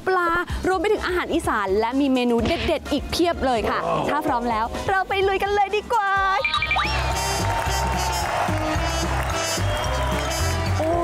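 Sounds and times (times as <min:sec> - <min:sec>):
woman speaking: 0:00.0 - 0:06.5
background music with bass line: 0:01.3 - 0:11.0.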